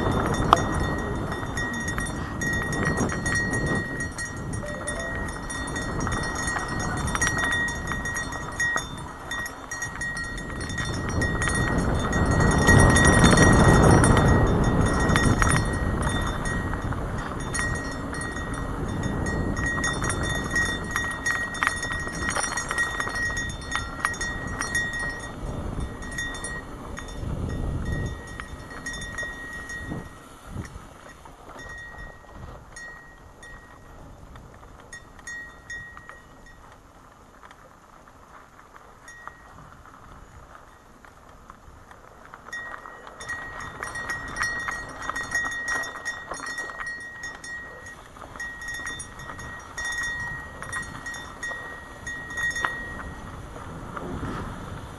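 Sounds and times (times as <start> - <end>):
wind rushing over microphone: 0.0 - 36.6, 41.4 - 54.9
tyres rolling on dirt trail: 0.0 - 54.9.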